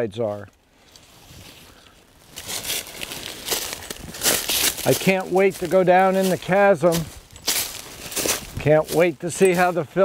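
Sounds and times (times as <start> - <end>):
footsteps crunching dry leaves: 1.1 - 10.0.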